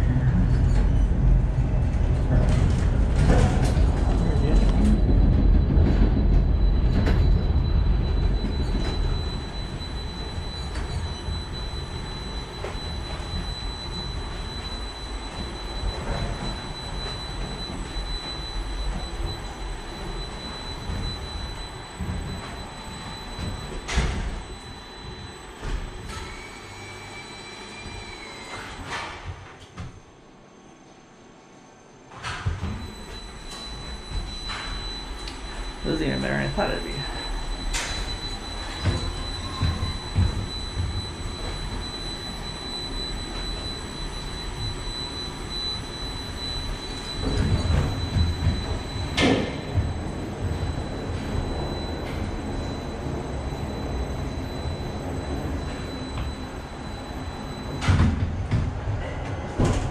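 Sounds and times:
lift car rumbling along track: 0:00.0 - 0:23.8
high whine: 0:00.0 - 0:29.0, 0:32.1 - 0:59.8.

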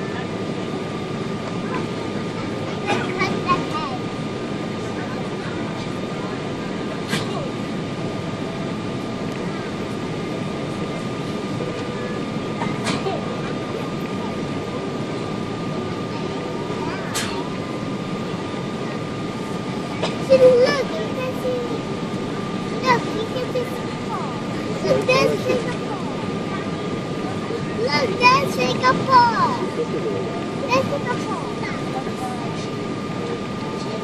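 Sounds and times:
airliner cabin engine rush: 0:00.0 - 0:34.0
thin steady whine: 0:00.0 - 0:34.0.

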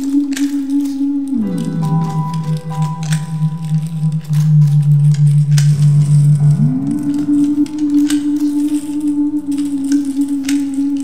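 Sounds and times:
dark ambient synth drone: 0:00.0 - 0:11.0.

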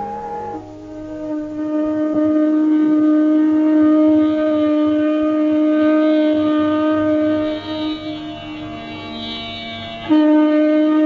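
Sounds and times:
fainter higher tones: 0:00.0 - 0:11.0
wind instrument holding long note: 0:00.0 - 0:11.0.

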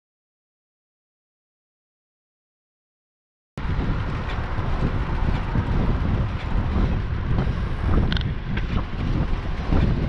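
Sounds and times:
road noise: 0:03.6 - 0:10.0
wind buffeting microphone: 0:03.6 - 0:10.0
faint rattling clicks: 0:08.1 - 0:08.7.

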